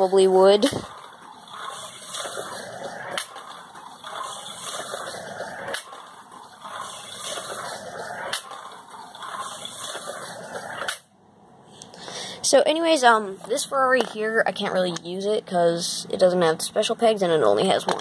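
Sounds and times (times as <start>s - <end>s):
toy car rattling on track: 0.0s - 11.0s, 17.6s - 18.0s
toy slot car motor whirring: 0.0s - 11.0s.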